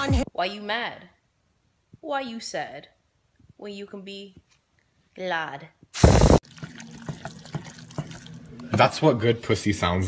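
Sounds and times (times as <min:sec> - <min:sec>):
spoon stirring sticky food: 0:06.4 - 0:08.9.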